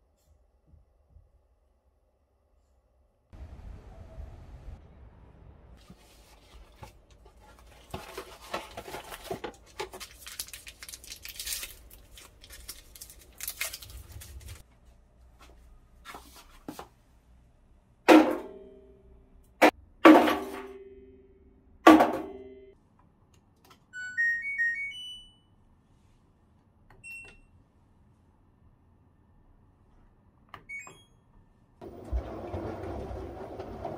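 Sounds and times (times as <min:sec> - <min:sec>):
tablets thunking into steel drum: 0:18.1 - 0:18.7, 0:20.0 - 0:20.8, 0:21.9 - 0:22.6
washing machine beep: 0:23.9 - 0:25.6, 0:27.0 - 0:27.6, 0:30.6 - 0:33.9.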